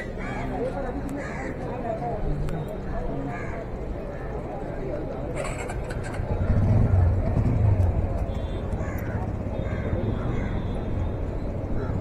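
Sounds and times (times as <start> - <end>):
traffic noise: 0.0 - 12.0
voices of passers-by: 0.0 - 12.0
vehicle engine rumbling: 3.7 - 12.0.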